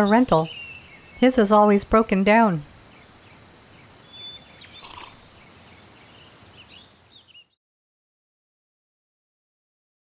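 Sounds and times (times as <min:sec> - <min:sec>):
small birds chirping: 0:00.0 - 0:07.6.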